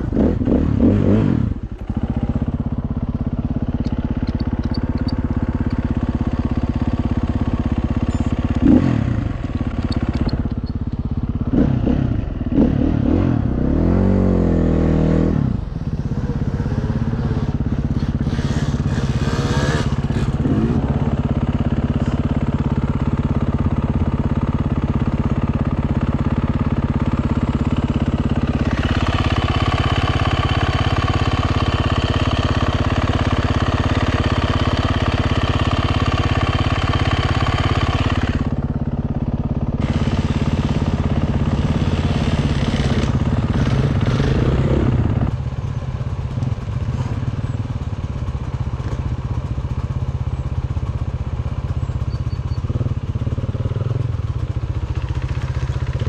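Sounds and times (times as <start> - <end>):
motorcycle engine under throttle: 0.0 - 56.0.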